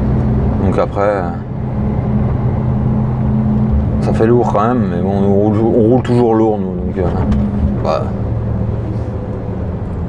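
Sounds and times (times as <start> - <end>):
truck diesel engine drone: 0.0 - 10.0.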